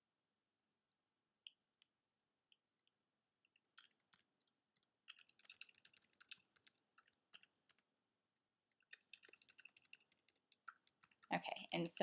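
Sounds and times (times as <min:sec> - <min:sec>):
faint keyboard typing: 0:01.4 - 0:12.0.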